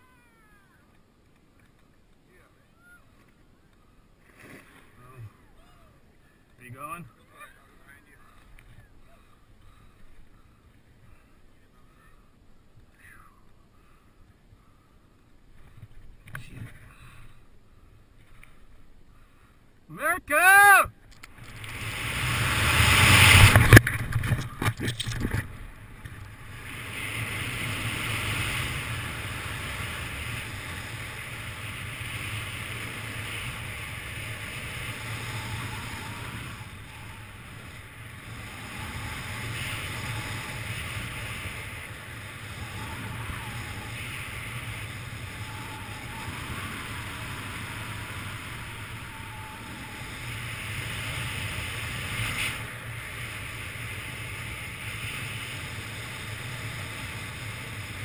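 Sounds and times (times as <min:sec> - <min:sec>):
wind rushing over microphone: 0:21.3 - 0:58.0.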